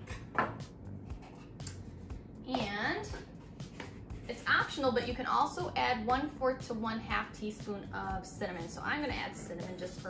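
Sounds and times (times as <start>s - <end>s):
woman's voice: 2.5s - 3.2s, 4.3s - 10.0s.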